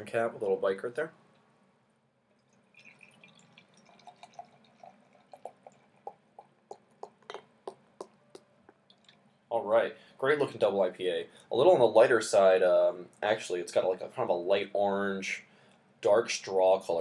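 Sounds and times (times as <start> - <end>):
beer pouring into glass: 2.3 - 7.8
bottle glugging: 2.7 - 8.1.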